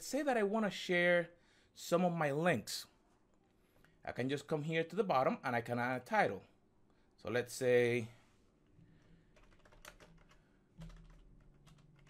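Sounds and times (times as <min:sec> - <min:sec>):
faint keyboard typing: 0:09.0 - 0:12.0.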